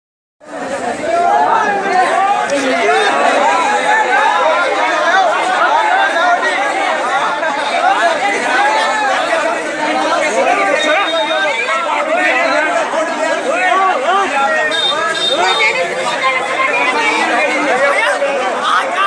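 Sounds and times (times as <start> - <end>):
crowd of men talking: 0.4 - 19.0.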